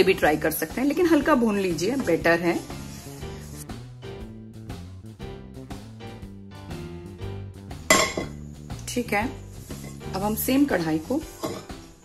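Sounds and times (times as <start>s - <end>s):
background music: 0.0s - 12.0s
metal pan clanking on stove: 7.9s - 8.4s.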